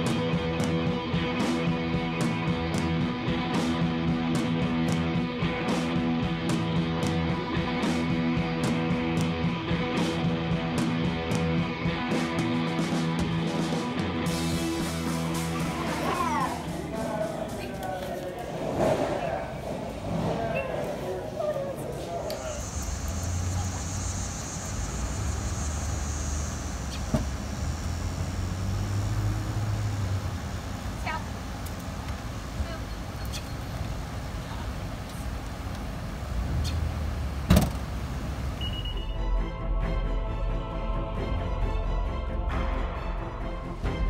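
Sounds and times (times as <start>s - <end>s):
steady background noise: 0.0s - 39.0s
low outdoor rumble: 14.5s - 38.9s
indistinct voices: 15.2s - 31.5s
car rear hatch shutting: 26.3s - 28.0s, 36.6s - 38.8s.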